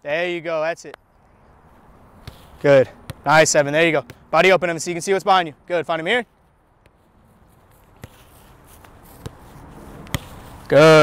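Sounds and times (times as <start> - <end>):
faint outdoor background: 0.0 - 11.0
soccer ball kicks: 2.2 - 4.2, 6.8 - 11.0.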